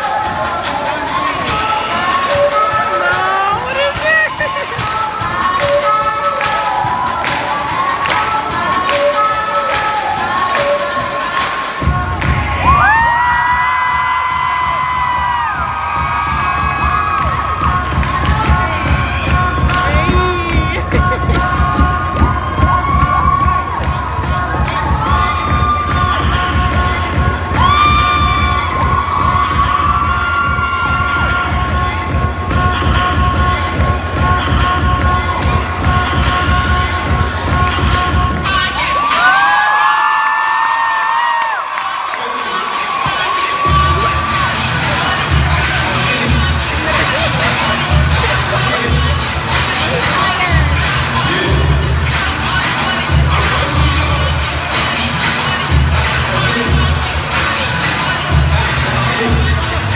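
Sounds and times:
crowd cheering and screaming: 0.0 - 5.4, 11.0 - 32.1, 38.4 - 50.7
music with thumping beat: 2.2 - 38.5, 43.6 - 59.9.

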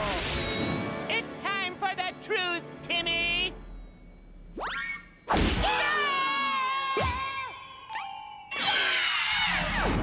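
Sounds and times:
loud cartoon whack: 5.3 - 5.8.

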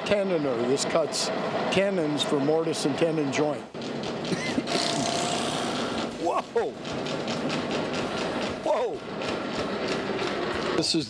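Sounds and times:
woodworking machine cutting wood: 3.8 - 11.0.

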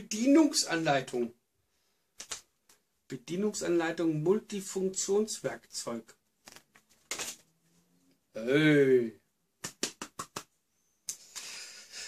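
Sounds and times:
paper sheet rustling: 6.4 - 7.5.

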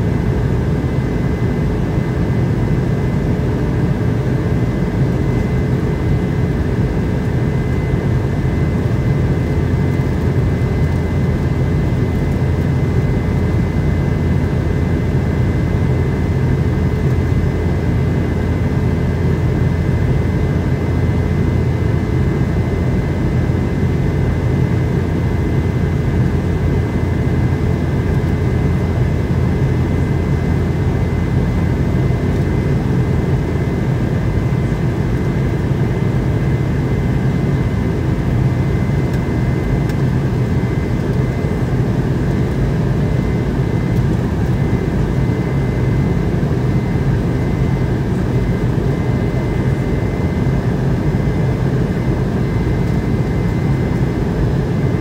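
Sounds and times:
aircraft cabin rumble: 0.0 - 55.0.

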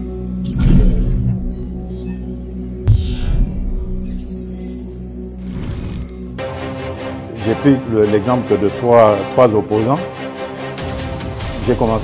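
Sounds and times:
droning bass: 0.0 - 6.4.

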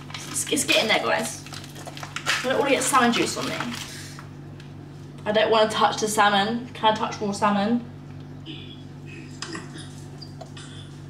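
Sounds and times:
plastic packaging rustling: 0.0 - 4.3
steady low hum: 0.0 - 11.0.

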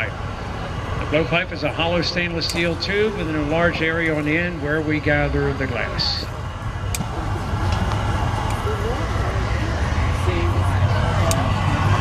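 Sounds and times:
faint voices: 0.0 - 12.0
furnace equipment droning: 0.0 - 12.0.

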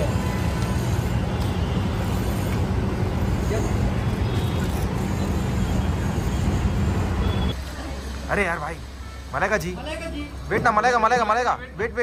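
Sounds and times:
street traffic rumble: 0.0 - 12.0.

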